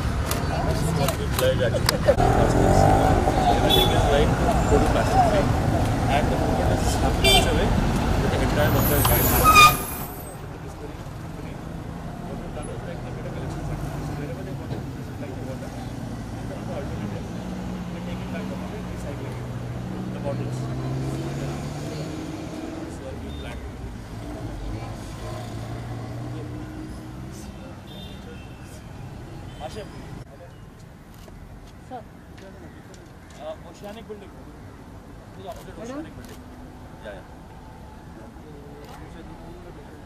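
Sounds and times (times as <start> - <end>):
road traffic: 0.0 - 40.0.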